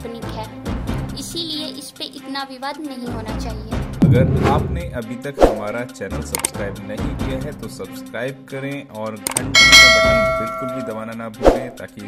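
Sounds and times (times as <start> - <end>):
bright bell ding: 9.6 - 11.0.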